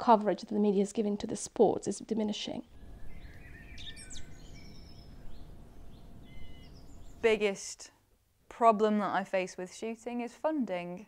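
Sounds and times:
faint bird chirps: 0:02.7 - 0:07.4
steady low rumble: 0:02.7 - 0:07.4.

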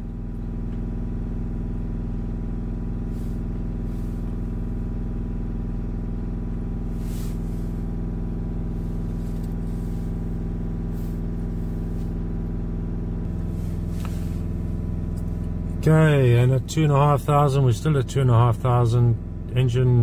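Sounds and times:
diesel engine droning: 0:00.0 - 0:20.0.

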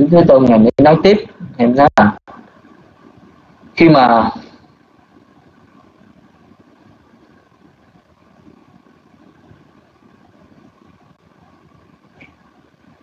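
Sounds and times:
faint microphone hum and hiss: 0:00.0 - 0:13.0.

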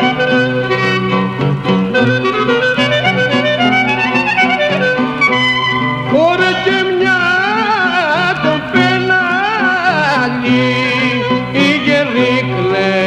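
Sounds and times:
clarinet dance melody: 0:00.0 - 0:13.0
man singing: 0:06.1 - 0:13.0.

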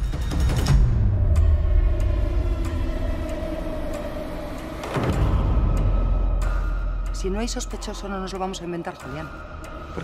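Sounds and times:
low rumbling drone: 0:00.8 - 0:10.0.

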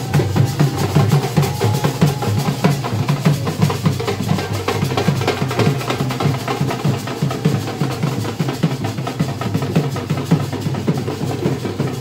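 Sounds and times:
drum-led music: 0:00.0 - 0:12.0.

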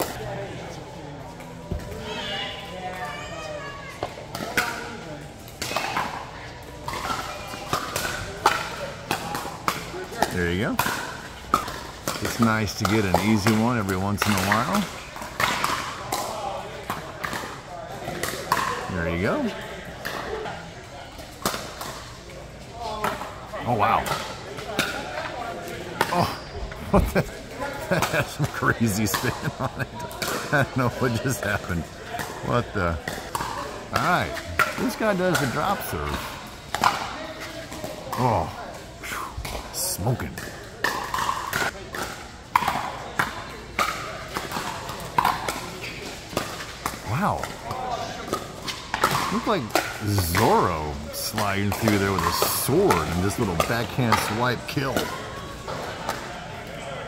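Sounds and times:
murmur of distant voices: 0:00.0 - 0:57.0.

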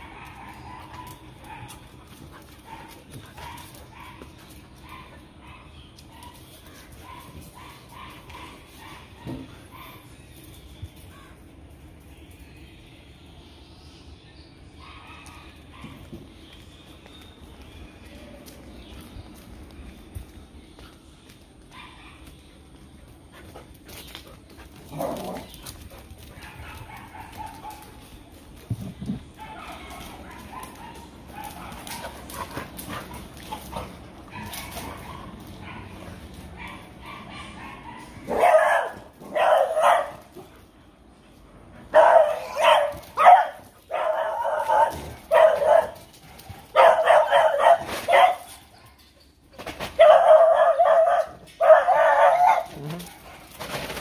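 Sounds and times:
dogs barking and yipping: 0:00.0 - 0:11.6, 0:14.7 - 0:16.4, 0:21.6 - 0:40.8, 0:41.8 - 0:54.0.

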